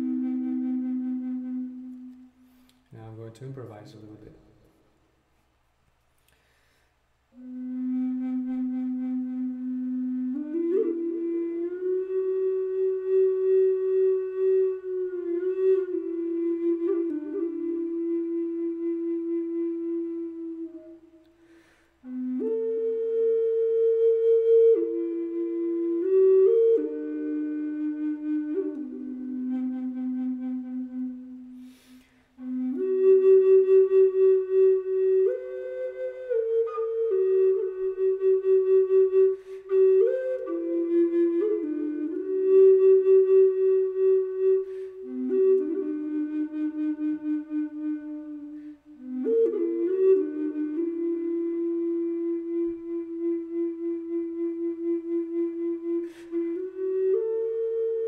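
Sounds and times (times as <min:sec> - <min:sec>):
wooden flute playing held notes: 0:00.0 - 0:04.8, 0:07.3 - 0:58.0.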